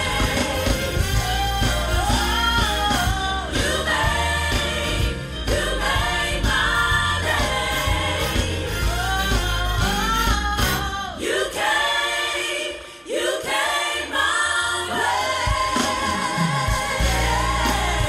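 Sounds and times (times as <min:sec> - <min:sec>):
gospel choir singing: 0:00.0 - 0:18.0.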